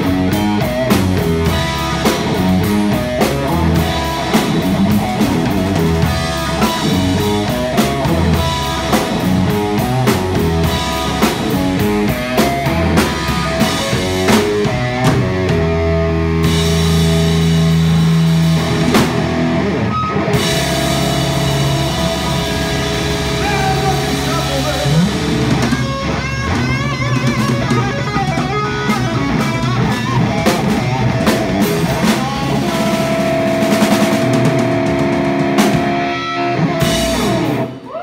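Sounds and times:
bass guitar: 0.0s - 38.0s
drum fills: 0.0s - 38.0s
ringing electric guitar chords: 0.0s - 38.0s.

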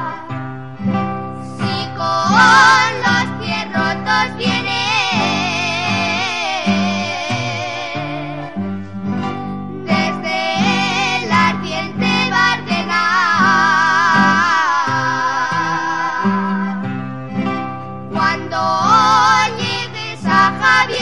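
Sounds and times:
person singing with vibrato: 0.0s - 0.4s, 1.4s - 8.7s, 9.7s - 17.1s, 18.1s - 21.0s
accordion: 0.0s - 21.0s
guitars: 0.0s - 21.0s.

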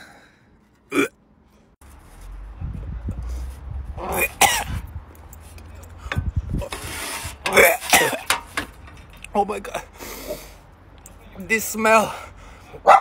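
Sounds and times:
man coughing and clearing throat: 4.2s - 4.8s, 7.5s - 8.3s.

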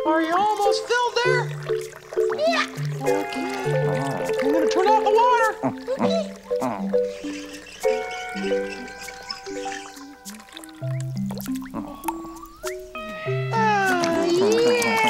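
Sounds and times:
light background music: 0.0s - 15.0s
high wavering voice-like calls: 0.6s - 15.0s.

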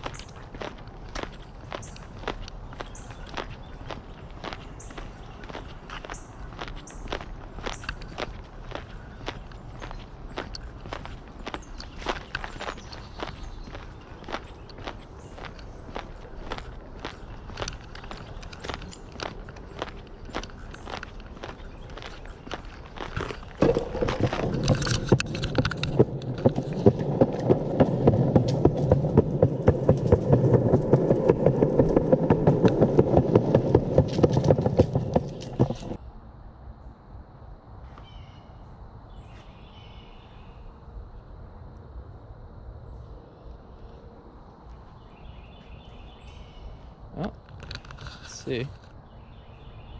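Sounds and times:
footsteps on paved path: 0.0s - 36.0s, 44.6s - 49.0s
dense noise with rapid ticking: 24.0s - 36.0s.

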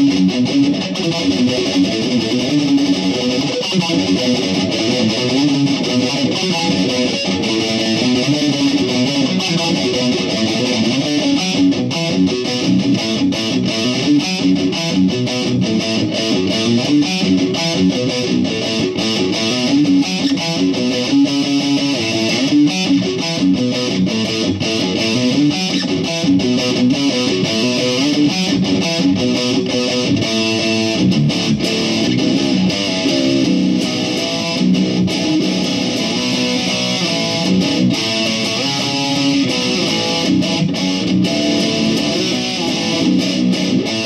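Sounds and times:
electric guitar riff: 0.0s - 44.0s.

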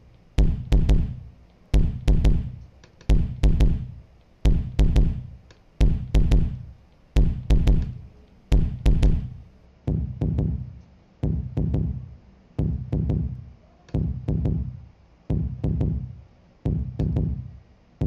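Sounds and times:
kick drum loop: 0.0s - 18.0s.

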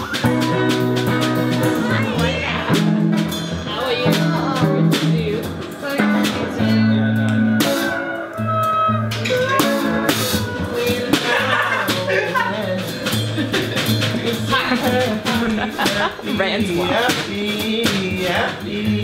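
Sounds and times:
electric blues band playing: 0.0s - 19.0s.

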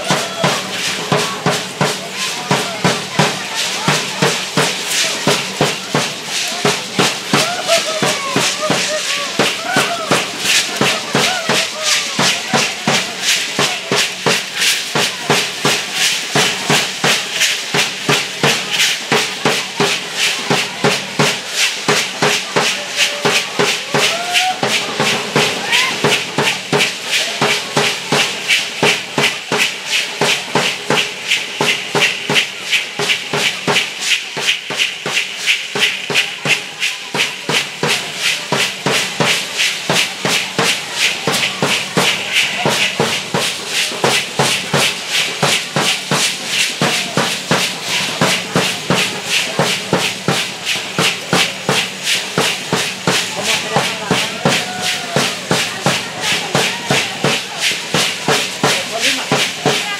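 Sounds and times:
drum beat: 0.0s - 59.9s
hand rattles shaking: 0.0s - 59.9s.

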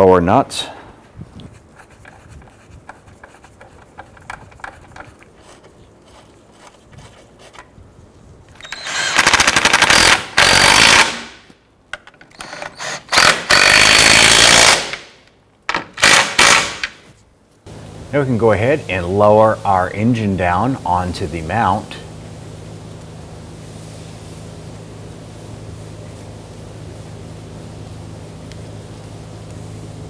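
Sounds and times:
power tool running down nuts: 8.6s - 11.2s, 12.4s - 14.9s.

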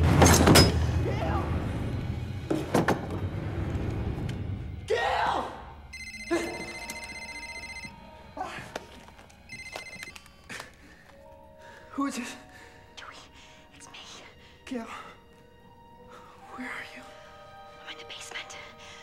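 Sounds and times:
mobile phone ringing: 5.9s - 8.0s, 9.5s - 10.2s.

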